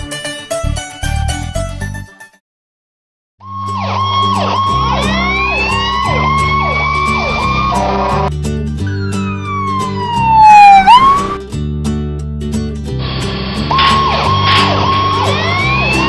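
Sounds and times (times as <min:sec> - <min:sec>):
background music with bass line: 0:03.5 - 0:16.0
cartoon siren sound effects: 0:03.6 - 0:08.0, 0:08.9 - 0:11.4, 0:13.8 - 0:16.0.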